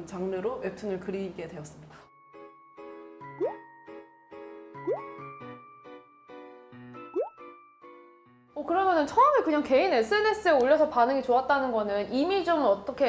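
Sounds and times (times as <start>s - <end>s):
rising pop sound effects: 3.3s - 3.7s, 4.8s - 5.3s, 7.0s - 7.5s.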